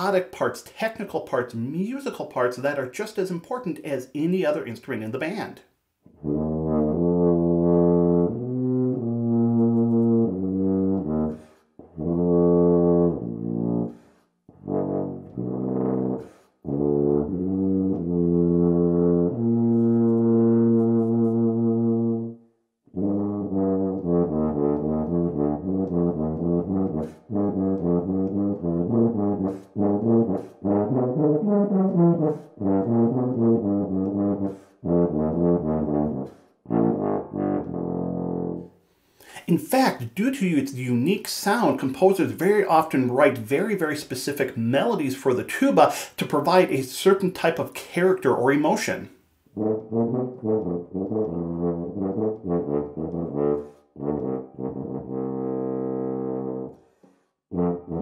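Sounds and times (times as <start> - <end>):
solo tuba playing: 6.1 - 38.8, 48.9 - 58.0.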